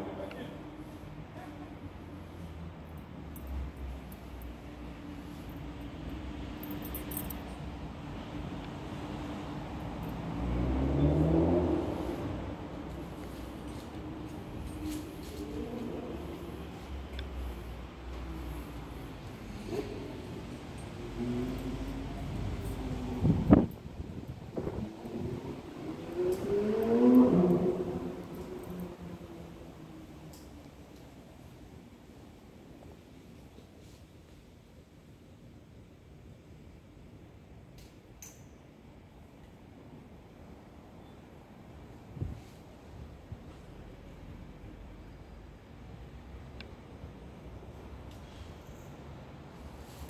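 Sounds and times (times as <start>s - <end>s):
faint engine hum: 0.0s - 37.7s
distant road traffic rumble: 0.0s - 50.0s.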